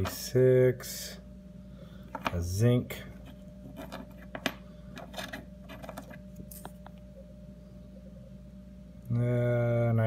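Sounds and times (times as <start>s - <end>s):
coins clicking on wooden table: 3.8s - 6.2s.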